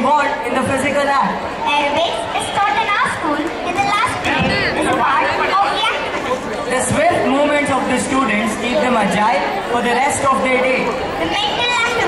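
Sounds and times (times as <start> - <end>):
crowd chatter: 0.0 - 12.0
speech over loudspeakers: 0.0 - 12.0.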